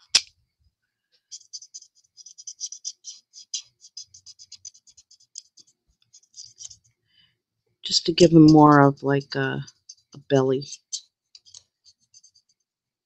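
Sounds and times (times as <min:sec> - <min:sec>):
marker tip scratching on cardstock: 0:01.3 - 0:06.9, 0:09.7 - 0:12.6.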